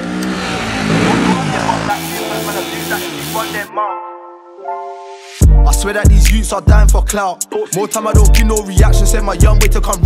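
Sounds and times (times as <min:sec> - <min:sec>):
motorcycle engine revving: 0:00.0 - 0:03.7.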